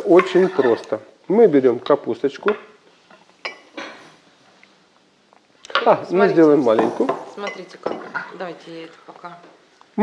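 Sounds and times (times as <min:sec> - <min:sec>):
glass bowl clink: 0:03.4 - 0:03.8.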